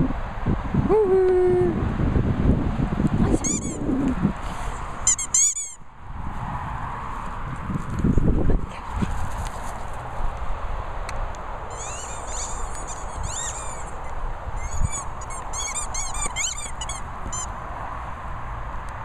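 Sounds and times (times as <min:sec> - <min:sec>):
low wind rumble: 0:00.0 - 0:19.0
rubber dog toy squeaking: 0:03.3 - 0:04.0, 0:05.0 - 0:05.8, 0:11.7 - 0:17.5.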